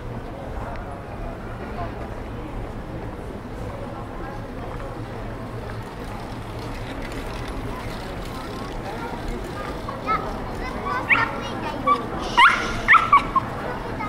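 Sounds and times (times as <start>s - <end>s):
murmur of voices: 0.0s - 14.0s
small dog yapping: 11.9s - 13.4s.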